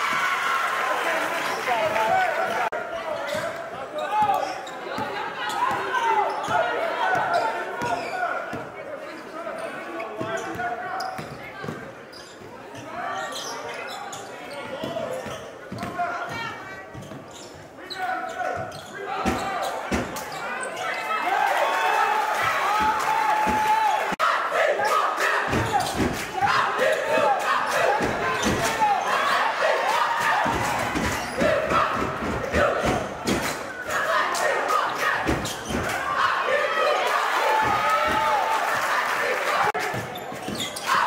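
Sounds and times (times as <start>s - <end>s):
voices calling out: 0.0s - 41.0s.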